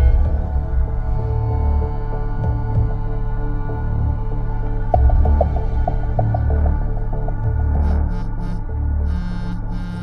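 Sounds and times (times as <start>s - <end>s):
dramatic score with low drone: 0.0s - 10.0s.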